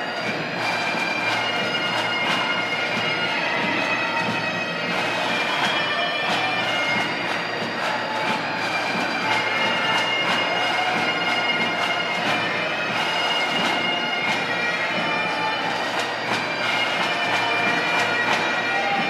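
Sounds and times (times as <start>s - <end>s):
bagpipes playing: 0.0s - 19.0s.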